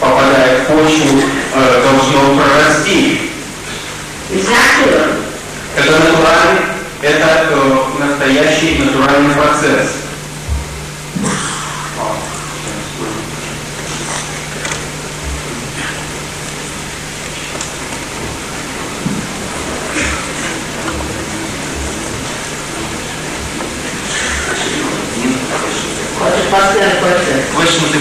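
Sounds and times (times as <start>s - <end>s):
low electrical hum: 0.0s - 28.0s
tape hiss: 0.0s - 28.0s.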